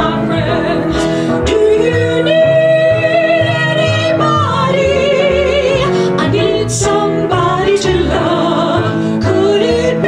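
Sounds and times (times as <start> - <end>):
piano accompaniment: 0.0 - 10.0
two women singing: 0.0 - 10.0.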